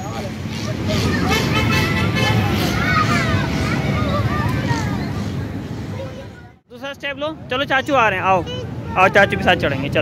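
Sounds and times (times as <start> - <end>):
children and adults chattering: 0.0 - 10.0
high-pitched child's voice: 0.6 - 5.2, 5.9 - 6.6, 8.4 - 9.6.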